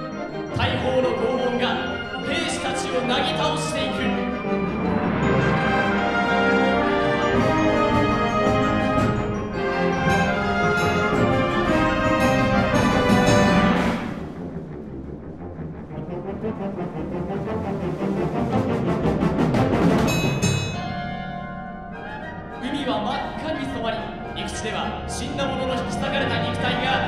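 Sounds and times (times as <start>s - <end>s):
wind band playing chords: 0.0s - 27.0s
percussion roll: 4.6s - 14.5s, 18.8s - 21.4s.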